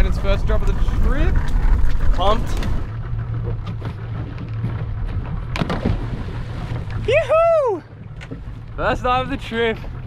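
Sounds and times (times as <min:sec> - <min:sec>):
wind on microphone: 0:00.0 - 0:02.9
outboard motor idling: 0:00.0 - 0:10.0
person whooping yell: 0:07.1 - 0:07.9.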